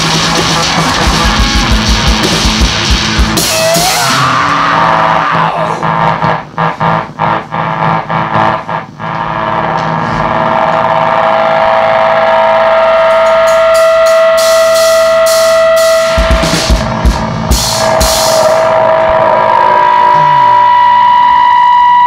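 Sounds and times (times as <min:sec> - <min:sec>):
heavy drum hits: 0:00.0 - 0:07.4, 0:13.0 - 0:18.7
punk rock band playing: 0:00.0 - 0:20.0
held electric guitar note: 0:00.5 - 0:22.0
cymbal crashes: 0:12.1 - 0:19.8.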